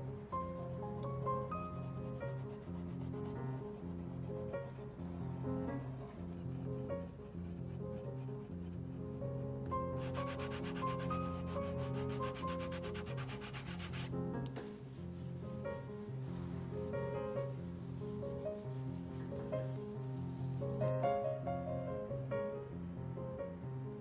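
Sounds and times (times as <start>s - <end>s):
cotton swab rubbing painting: 0.0s - 5.2s, 6.0s - 9.2s, 10.0s - 20.9s.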